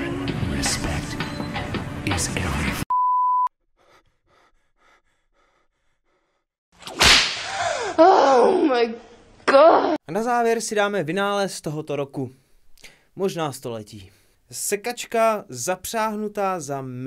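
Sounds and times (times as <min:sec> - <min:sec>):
wordless vocal sounds: 0:00.0 - 0:02.9.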